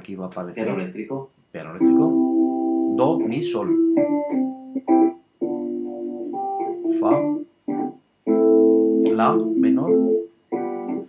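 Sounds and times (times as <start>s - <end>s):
electric piano chords: 1.8s - 11.0s.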